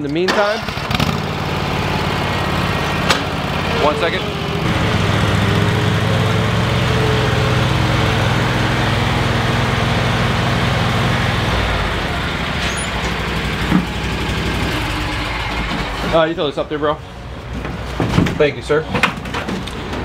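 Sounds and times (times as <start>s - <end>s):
lawn mower engine running: 0.3s - 17.6s.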